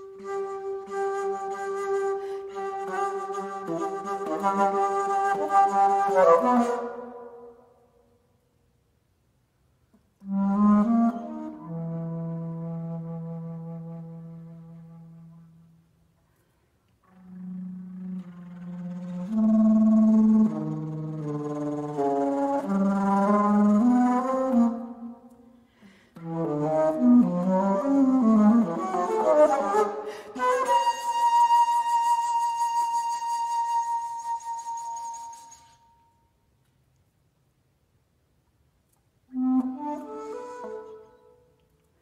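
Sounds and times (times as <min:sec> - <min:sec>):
bass flute low notes: 0:39.3 - 0:41.5.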